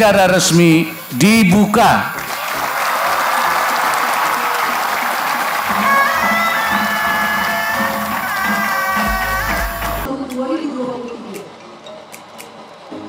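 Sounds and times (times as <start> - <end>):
large crowd applauding: 1.9 - 10.1
music with long held notes: 3.4 - 13.0.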